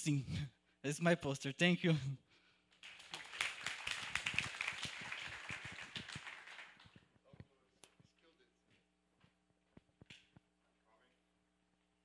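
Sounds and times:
audience applauding: 0:02.8 - 0:07.1.

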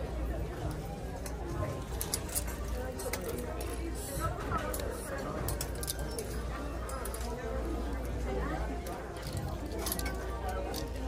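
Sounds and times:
background chatter of shoppers: 0:00.0 - 0:11.0.

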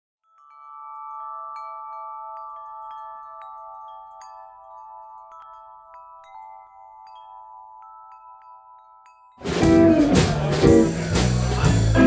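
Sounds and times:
wind chimes ringing: 0:00.2 - 0:11.7.

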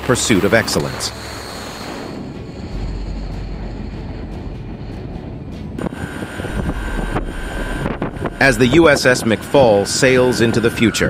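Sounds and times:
rocket motor roar: 0:00.0 - 0:11.0.

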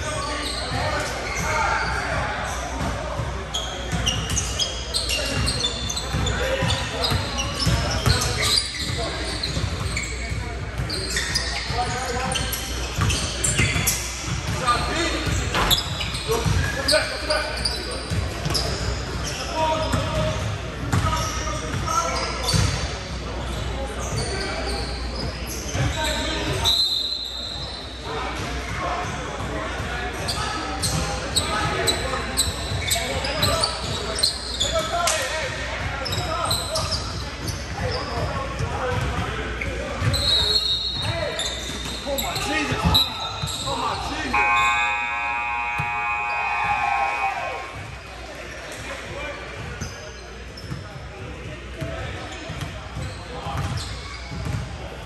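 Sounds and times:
sneakers squeaking: 0:00.0 - 0:55.0
players calling out: 0:40.0 - 0:50.0
steady pitched tone: 0:44.4 - 0:47.5.

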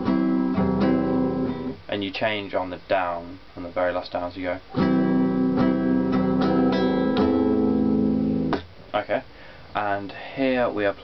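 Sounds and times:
classical guitar chord strumming: 0:00.0 - 0:01.8, 0:04.7 - 0:08.7.

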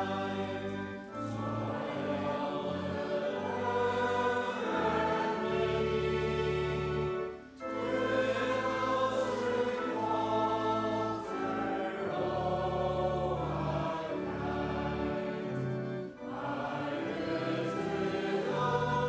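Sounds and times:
congregation singing a hymn: 0:00.0 - 0:19.0
held accompaniment chords: 0:00.0 - 0:19.0.

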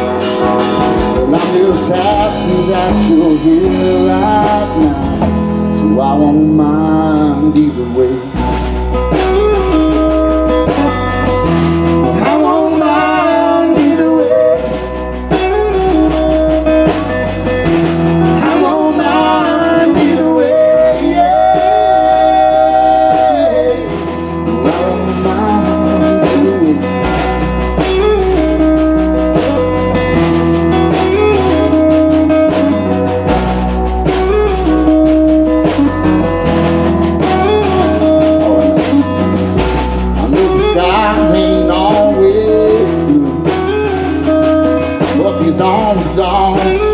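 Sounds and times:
country band playing: 0:00.0 - 0:46.9.

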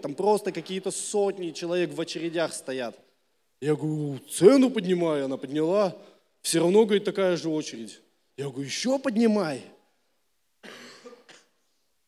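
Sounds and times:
man coughing: 0:10.6 - 0:11.6.

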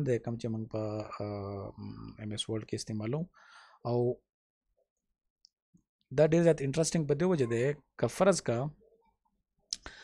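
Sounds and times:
person speaking: 0:06.2 - 0:08.8.

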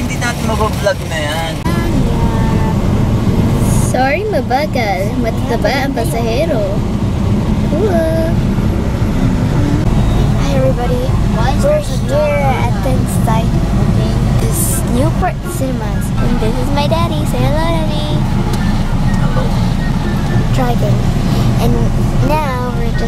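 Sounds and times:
vehicle engine rumble: 0:00.0 - 0:23.0
voices talking: 0:00.0 - 0:23.0.

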